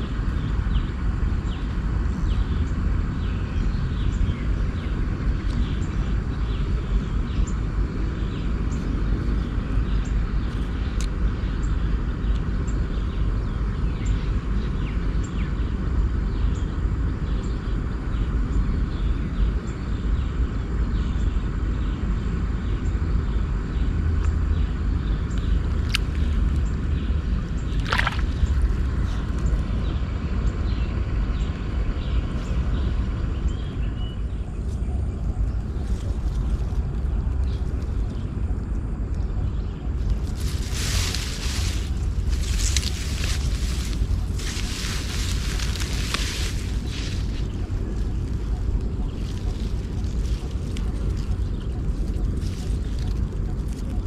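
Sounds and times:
low rumble: 0.0s - 54.0s.

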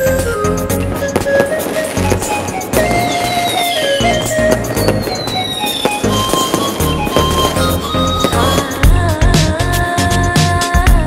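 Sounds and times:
fireworks popping and crackling: 0.0s - 9.8s
music with steady beat: 0.0s - 11.0s.

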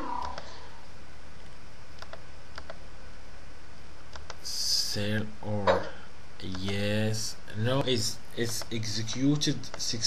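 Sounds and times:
steady background hiss: 0.0s - 10.0s
computer mouse clicks: 0.2s - 0.5s, 1.4s - 2.8s, 4.1s - 4.4s, 8.4s - 9.9s.

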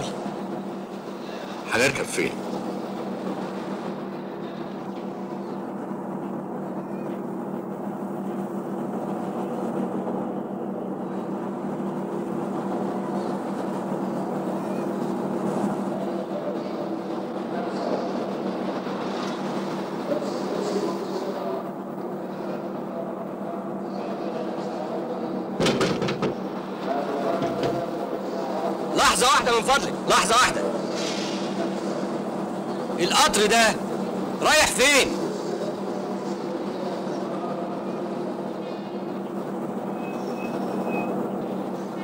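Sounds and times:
faint indistinct voices: 0.0s - 42.0s
train humming: 0.0s - 42.0s.

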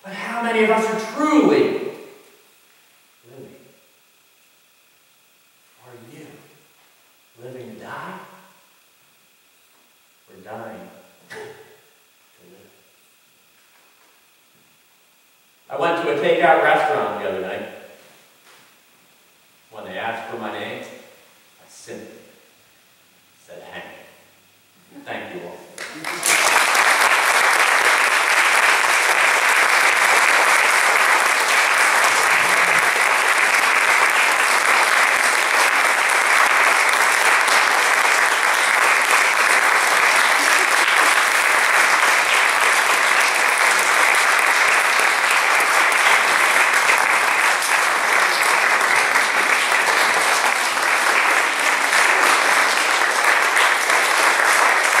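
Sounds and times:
audience applauding: 25.8s - 55.0s.

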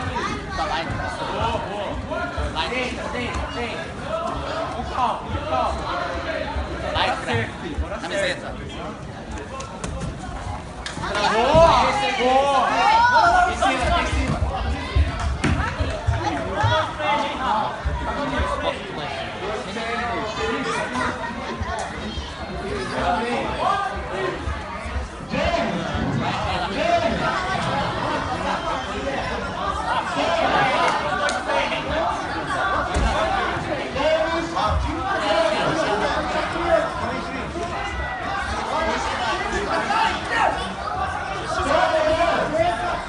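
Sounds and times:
crowd chatter: 0.0s - 43.0s
voices talking and calling out: 0.0s - 43.0s.

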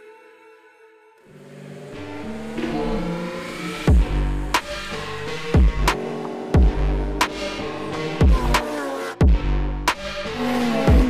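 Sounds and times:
music: 0.0s - 11.0s
motorcycle engine revving: 1.3s - 11.0s.

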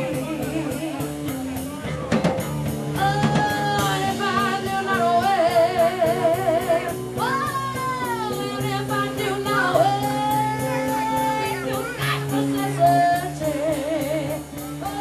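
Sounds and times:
woman singing long held notes: 0.0s - 2.0s, 3.0s - 15.0s
drum kit: 0.0s - 15.0s
electric bass: 0.0s - 15.0s
electric guitar: 0.0s - 15.0s.

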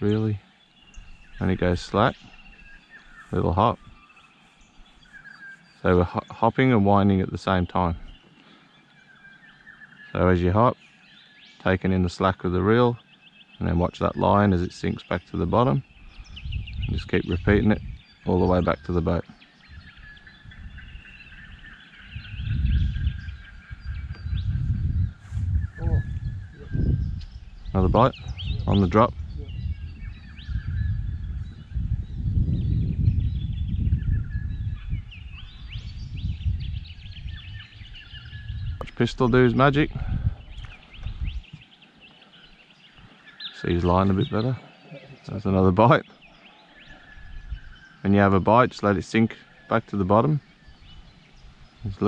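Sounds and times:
small birds chirping: 0.0s - 52.0s
low rumble on microphone: 13.6s - 41.6s, 42.4s - 52.0s.

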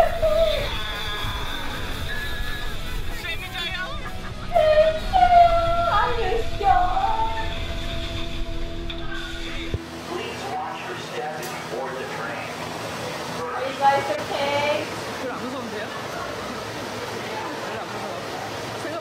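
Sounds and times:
low rumble: 4.0s - 9.9s.

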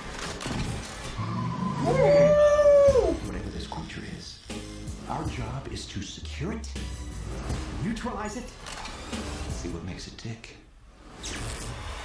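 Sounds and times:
man's falsetto howl: 1.3s - 3.3s.

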